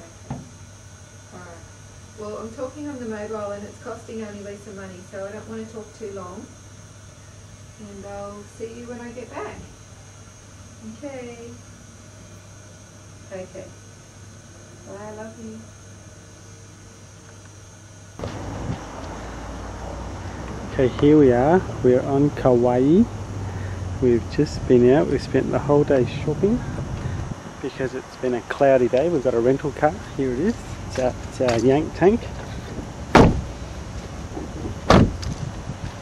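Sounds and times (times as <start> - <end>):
faint steady background noise: 0.0 - 36.0
steady low hum: 0.0 - 36.0
wind: 18.1 - 36.0
traffic: 18.2 - 28.2, 28.8 - 36.0
sharp thumps: 32.7 - 33.6, 34.3 - 35.6.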